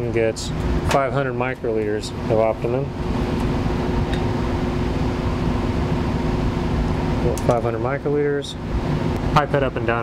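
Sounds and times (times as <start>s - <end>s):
blower fan humming: 0.0s - 10.0s.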